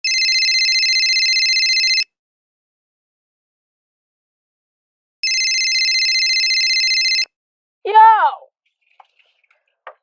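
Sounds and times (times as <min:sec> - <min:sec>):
electronic telephone ringing: 0:00.0 - 0:02.1, 0:05.2 - 0:07.3.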